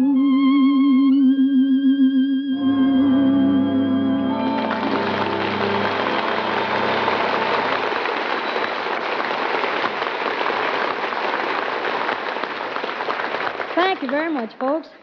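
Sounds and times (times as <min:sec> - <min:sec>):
orchestra final chord: 0:02.6 - 0:08.5
audience applauding: 0:04.4 - 0:14.6.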